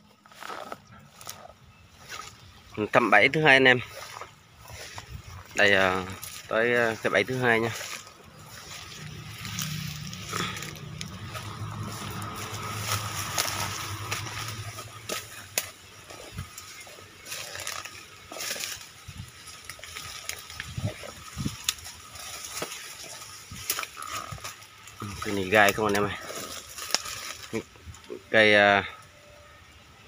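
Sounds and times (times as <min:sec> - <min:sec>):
dry twigs and grass crackling: 0:00.0 - 0:29.9
leaves rustling: 0:00.0 - 0:29.9.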